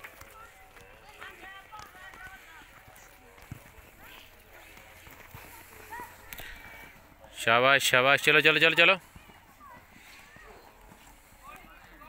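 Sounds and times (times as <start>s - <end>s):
distant children calling and shouting: 0.0s - 12.0s.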